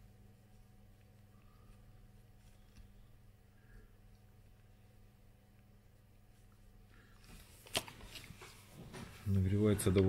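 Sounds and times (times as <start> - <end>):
soft rustling: 0.0 - 10.0.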